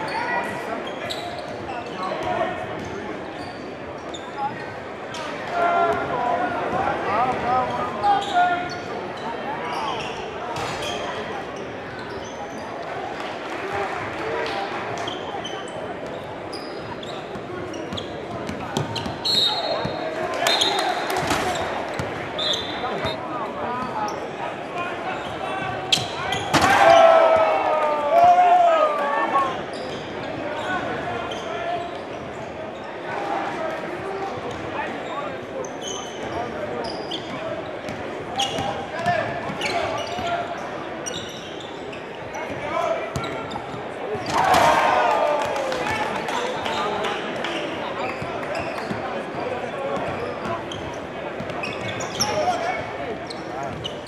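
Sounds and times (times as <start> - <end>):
crowd chatter in echoing hall: 0.0 - 54.0
crowd shouting: 26.6 - 29.6.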